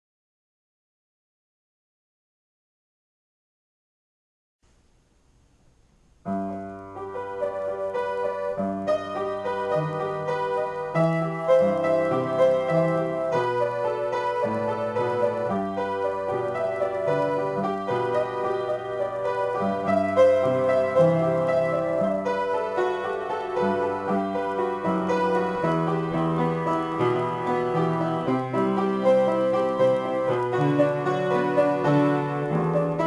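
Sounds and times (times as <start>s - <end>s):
solo piano improvisation: 5.7s - 33.0s.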